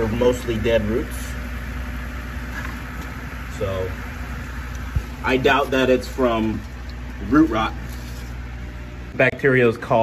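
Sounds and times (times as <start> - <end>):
air pump humming: 0.0 - 10.0.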